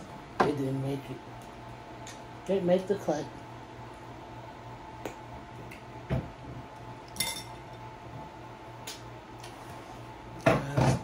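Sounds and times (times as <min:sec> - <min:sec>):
faint steady hum: 0:00.0 - 0:11.0
dishes and utensils clinking: 0:07.2 - 0:07.6.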